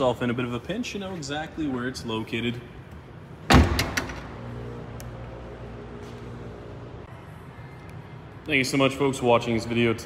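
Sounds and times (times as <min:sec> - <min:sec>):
car hatch slamming shut: 0:03.5 - 0:04.2.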